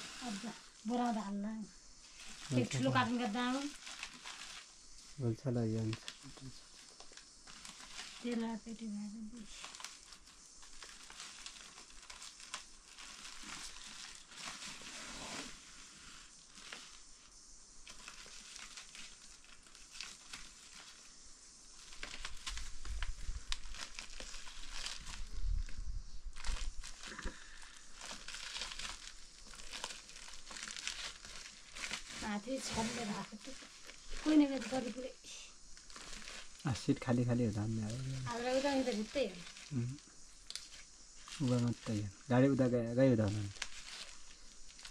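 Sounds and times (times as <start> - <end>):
plastic sack rustling: 0.0 - 42.1, 43.0 - 44.9.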